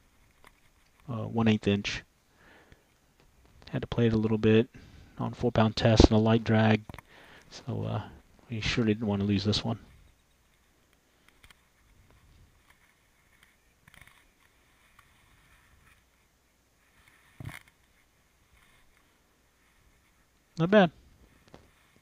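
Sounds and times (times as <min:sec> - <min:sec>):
faint clicks and rustles: 0:00.0 - 0:01.2, 0:02.6 - 0:04.4, 0:09.7 - 0:22.0.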